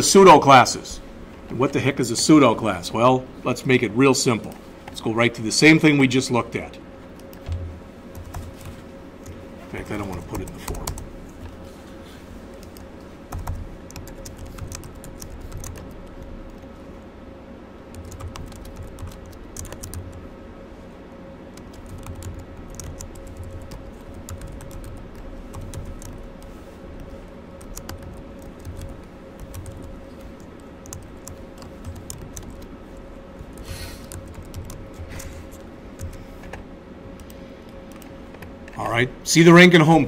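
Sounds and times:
steady hum: 0.0s - 40.0s
keyboard typing: 7.2s - 11.6s, 12.5s - 16.7s, 17.9s - 20.2s, 21.5s - 38.5s.

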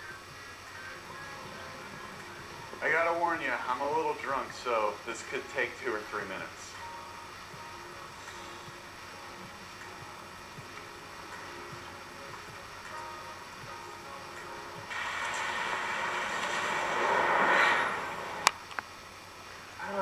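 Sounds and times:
quiet film music held tones: 0.0s - 20.0s
vehicle driving: 14.8s - 18.8s.

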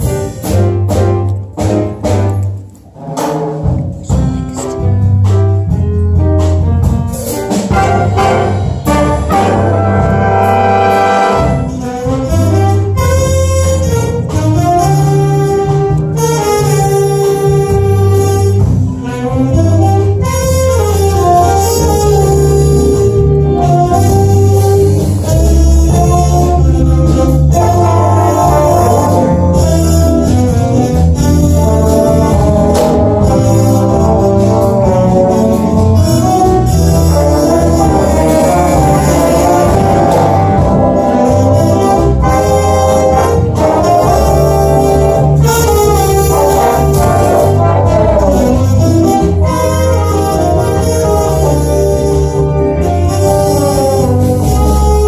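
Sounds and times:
brass and saxophone chords: 0.0s - 55.0s
jazz big band bossa nova: 0.0s - 55.0s
trumpets: 7.7s - 55.0s.

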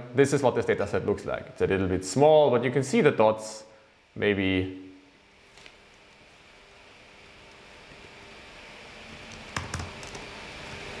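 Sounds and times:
keyboard typing: 9.6s - 10.2s.

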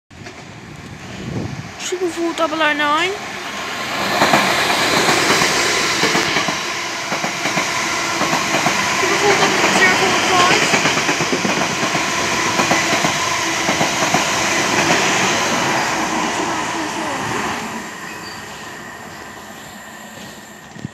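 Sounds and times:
train wheels clattering over rail joints: 4.2s - 15.2s.

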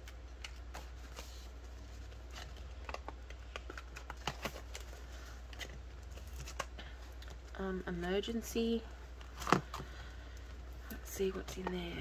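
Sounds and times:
plastic banknotes rustling: 0.0s - 7.5s
faint low hum: 0.0s - 12.0s.

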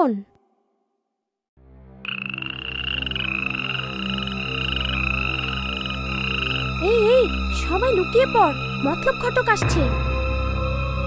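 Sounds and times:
high trilling frog chorus: 2.0s - 9.6s.

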